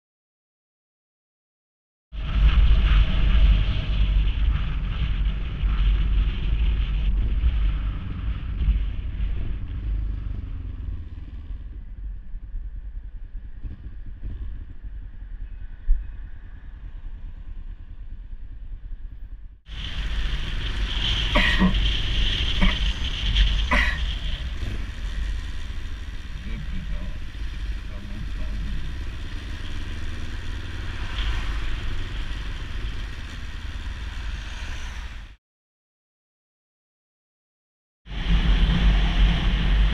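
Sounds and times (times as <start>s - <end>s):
wind noise on microphone: 2.2s - 27.9s, 38.1s - 39.9s
motorcycle engine rumble: 2.2s - 35.3s.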